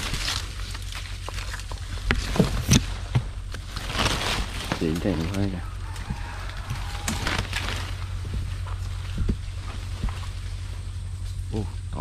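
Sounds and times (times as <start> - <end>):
crackles: 0.0 - 12.0
leaves rustling: 0.0 - 12.0
steady low rumble: 0.0 - 12.0.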